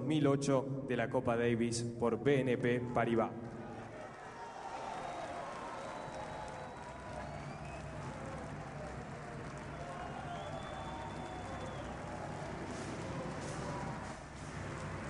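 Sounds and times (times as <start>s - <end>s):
crowd calls: 3.4s - 15.0s
crowd murmur: 3.4s - 15.0s.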